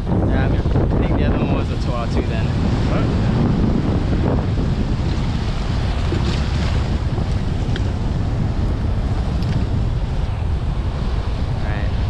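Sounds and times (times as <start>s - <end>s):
surf washing: 0.0s - 12.0s
wind buffeting microphone: 0.0s - 12.0s.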